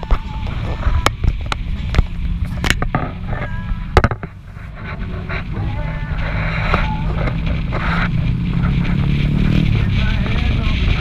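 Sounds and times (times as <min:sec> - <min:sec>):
car engine drone: 0:00.0 - 0:11.0
road and wind noise: 0:00.0 - 0:11.0.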